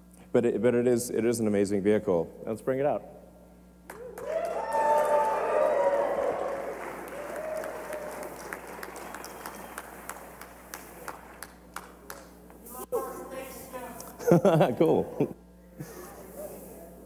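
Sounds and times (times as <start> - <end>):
shouts and whoops: 3.9 - 8.4
audience cheering: 3.9 - 11.4
clapping: 3.9 - 12.3.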